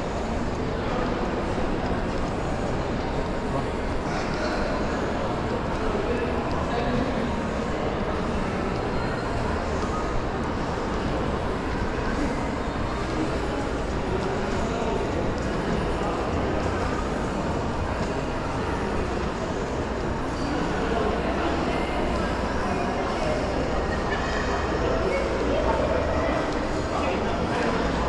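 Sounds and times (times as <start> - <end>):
indoor mall background noise: 0.0 - 28.0.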